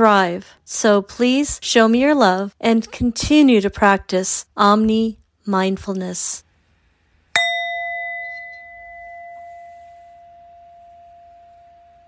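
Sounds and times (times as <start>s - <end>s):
struck bell ringing: 7.4s - 12.0s.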